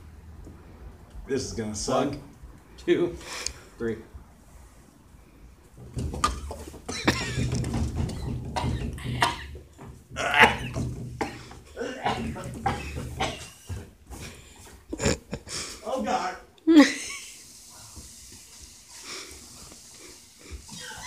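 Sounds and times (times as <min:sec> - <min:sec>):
men coughing and gagging: 0:06.9 - 0:09.6, 0:10.2 - 0:13.8, 0:14.9 - 0:15.8.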